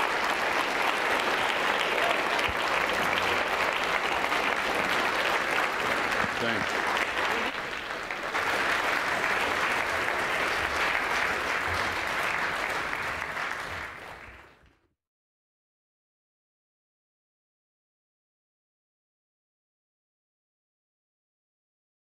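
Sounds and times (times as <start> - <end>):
large audience applauding: 0.0 - 14.8.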